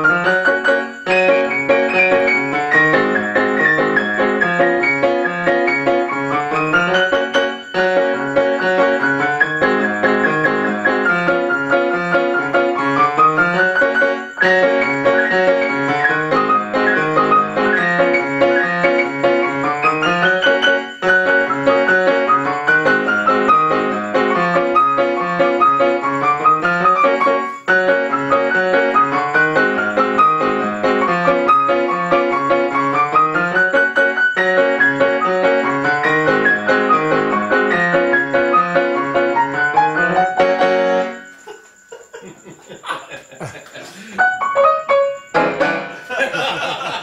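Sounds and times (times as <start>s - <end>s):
piano duet: 0.0s - 47.0s.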